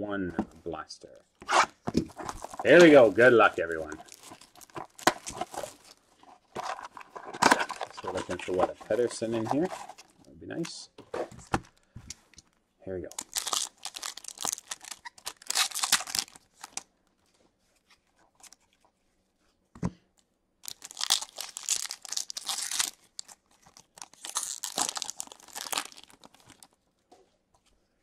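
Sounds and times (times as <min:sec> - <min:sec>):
foil wrappers tearing and crinkling: 0:02.1 - 0:06.0, 0:13.2 - 0:16.8, 0:20.6 - 0:26.8.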